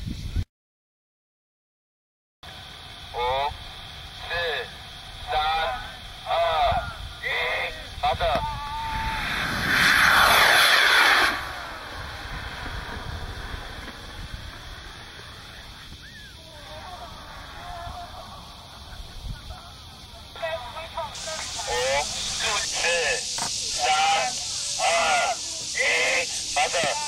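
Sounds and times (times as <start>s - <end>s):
voices shouting a countdown: 3.1s - 9.3s, 16.4s - 27.0s
rocket motor hissing whoosh: 8.5s - 16.4s, 21.1s - 27.0s.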